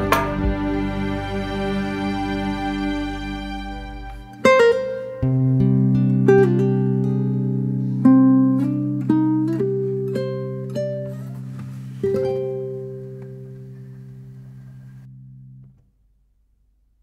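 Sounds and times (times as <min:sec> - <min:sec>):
held low guitar note: 0:00.0 - 0:06.8
guitar plucking slow melody: 0:00.0 - 0:15.7.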